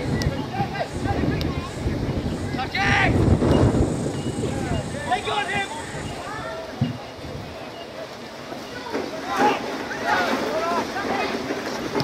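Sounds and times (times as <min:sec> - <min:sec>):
wind buffeting microphone: 0:00.0 - 0:08.9
faint voices of spectators: 0:00.0 - 0:12.0.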